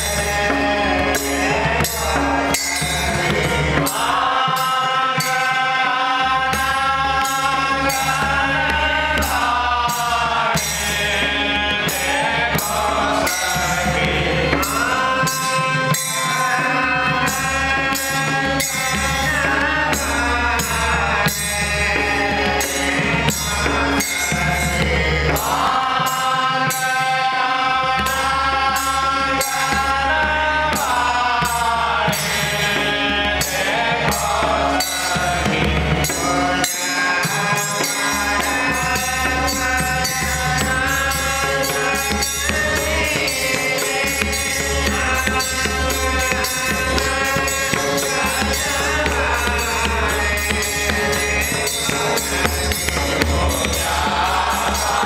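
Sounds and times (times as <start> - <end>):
harmonium drone: 0.0 - 55.0
men singing devotional song: 0.0 - 55.0
barrel drum played by hand: 27.8 - 55.0
hand cymbals ringing: 33.5 - 55.0.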